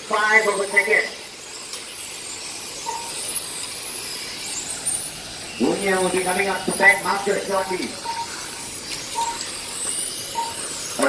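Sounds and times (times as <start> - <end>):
rc car motors whining: 0.0 - 11.0.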